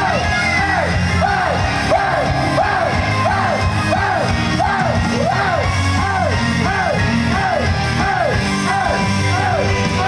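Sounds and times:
crowd yelling along: 0:00.0 - 0:10.0
upbeat pop song over loudspeakers: 0:00.0 - 0:10.0.

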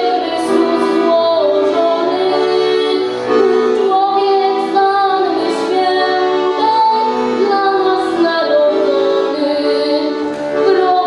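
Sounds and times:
accordion playing chords: 0:00.0 - 0:11.0
girl singing a carol: 0:00.0 - 0:11.0.

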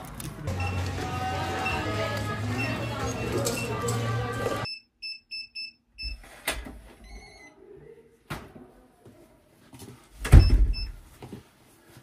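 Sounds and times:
keypad beeps: 0:01.6 - 0:04.0
door shutting with heavy thud: 0:10.2 - 0:10.9.

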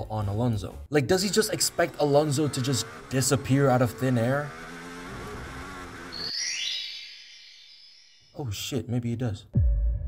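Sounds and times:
race car engine: 0:01.1 - 0:06.3
electronic rising pitches: 0:04.5 - 0:08.4.

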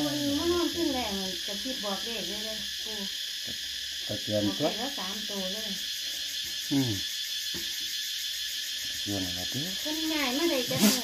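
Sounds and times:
high-pitched hiss: 0:00.0 - 0:11.0.

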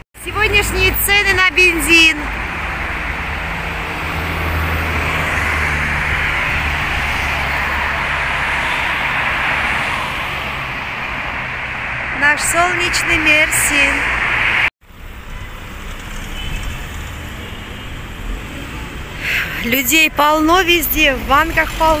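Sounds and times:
cars going past: 0:00.2 - 0:22.0.

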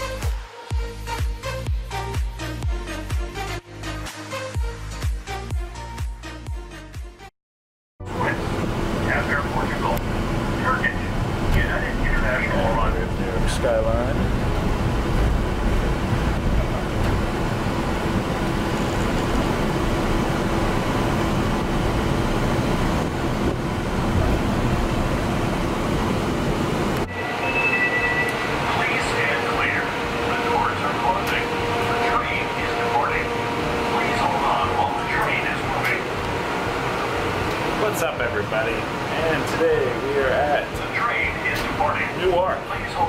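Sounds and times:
airport terminal rumble and hum: 0:08.0 - 0:43.0
train car interior rumble: 0:08.1 - 0:43.0
indistinct voices: 0:27.0 - 0:36.3.

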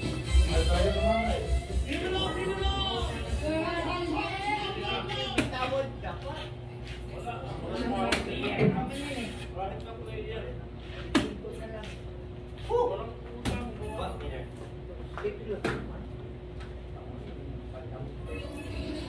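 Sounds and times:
steady hum: 0:00.0 - 0:19.0
indistinct voices: 0:18.2 - 0:19.0.

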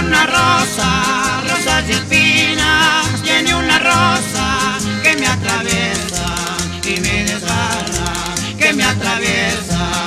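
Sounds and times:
strummed guitars: 0:00.0 - 0:10.0
wavering accordion melody: 0:00.0 - 0:10.0
shaker ticking: 0:00.1 - 0:10.0.

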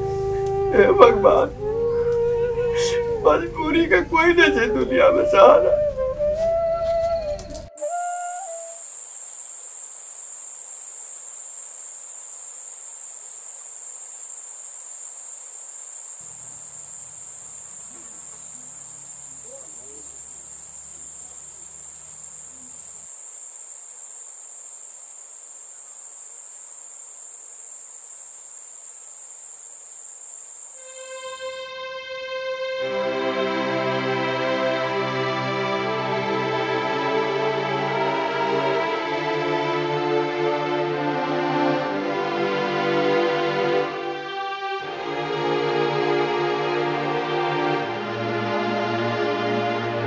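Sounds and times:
crickets trilling: 0:00.0 - 0:48.3.

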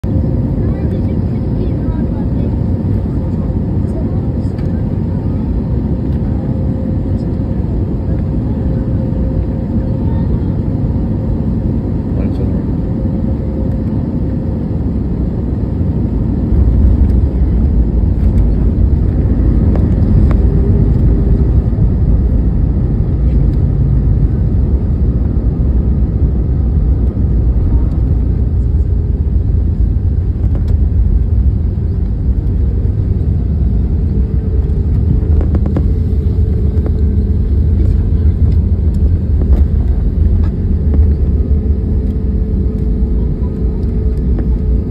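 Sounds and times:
aircraft rolling on runway rumble: 0:00.0 - 0:44.9
jet engine and airflow noise: 0:00.0 - 0:44.9.

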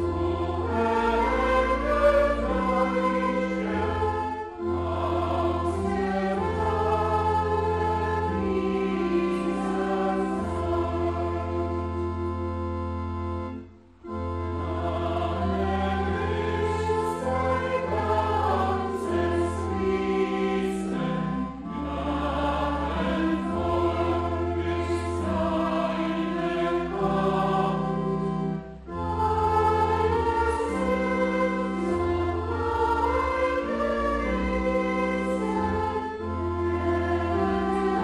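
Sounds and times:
soprano singing a hymn: 0:00.0 - 0:11.7
organ: 0:00.0 - 0:38.0.

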